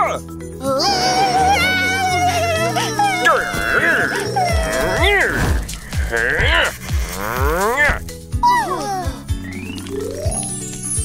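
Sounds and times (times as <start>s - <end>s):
background music: 0.0s - 11.0s
cartoon characters wailing sobs: 0.6s - 9.3s.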